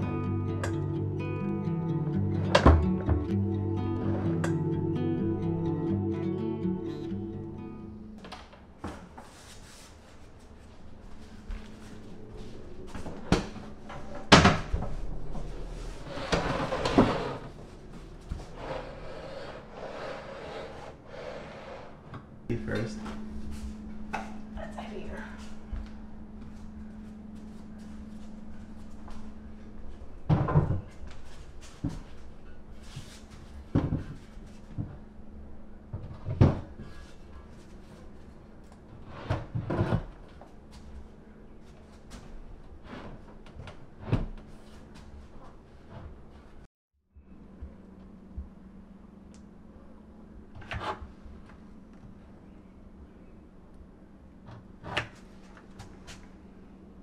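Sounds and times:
background music: 0:00.0 - 0:08.2.

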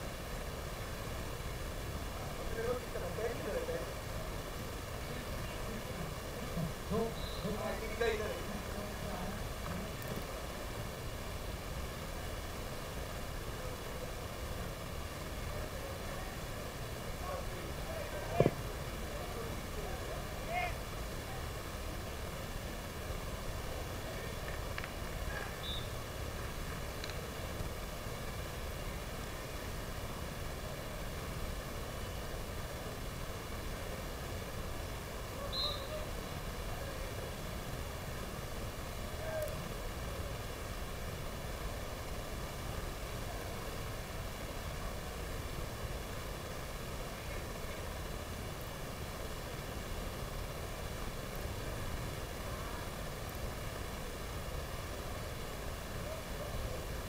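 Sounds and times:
low rumble and hiss: 0:00.0 - 0:57.0
faint indistinct voices: 0:02.0 - 0:11.5, 0:12.1 - 0:32.6, 0:33.5 - 0:57.0.

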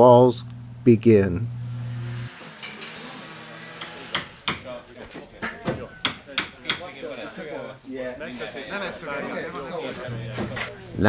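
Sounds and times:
hammer knocking on timber: 0:03.8 - 0:04.6
low voices: 0:04.6 - 0:11.0.

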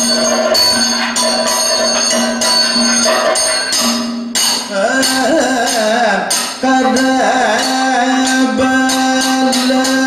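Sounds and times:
bell-metal percussion strikes: 0:00.0 - 0:10.0.

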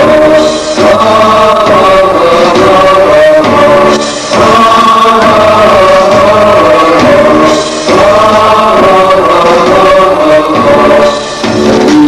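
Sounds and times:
musical accompaniment: 0:00.0 - 0:12.0
voices singing chant-like melody: 0:00.0 - 0:12.0.

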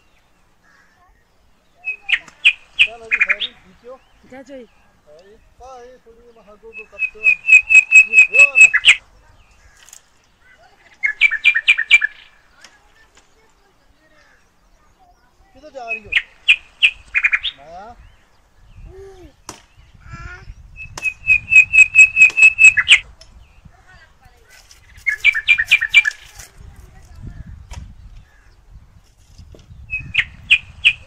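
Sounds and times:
bird calling sharp high notes: 0:01.8 - 0:04.0, 0:06.5 - 0:09.0, 0:09.7 - 0:12.8, 0:19.5 - 0:23.1, 0:24.9 - 0:26.4
bird calling sharp falling notes: 0:06.7 - 0:09.0, 0:20.8 - 0:23.0.

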